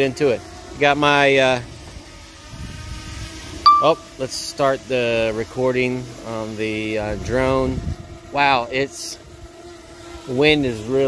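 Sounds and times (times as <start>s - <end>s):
wind rumble on microphone: 2.4s - 3.3s, 7.0s - 8.5s
short loud electronic beep: 3.7s - 4.1s.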